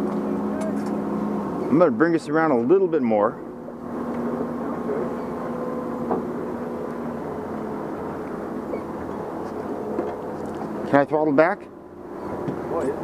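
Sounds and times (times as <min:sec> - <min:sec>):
outboard motors running: 0:00.0 - 0:13.0.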